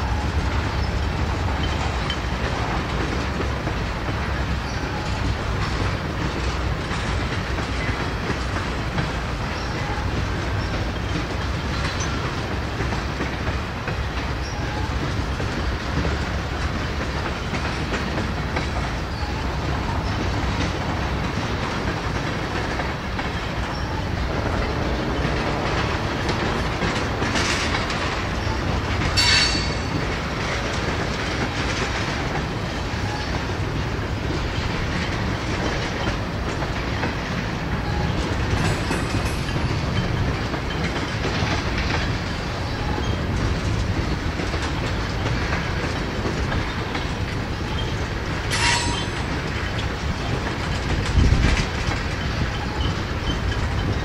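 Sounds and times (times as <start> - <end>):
freight train wheels rumbling on rail: 0.0 - 54.0.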